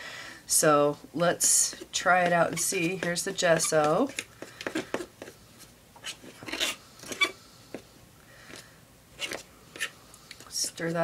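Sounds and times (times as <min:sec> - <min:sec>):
stirring tool scraping plastic: 0:01.4 - 0:07.8, 0:09.2 - 0:11.0.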